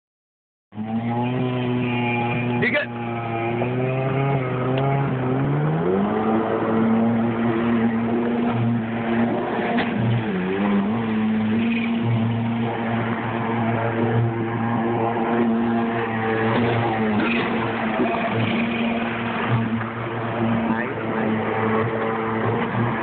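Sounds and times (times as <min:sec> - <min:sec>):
watercraft engine running: 0:00.8 - 0:23.0.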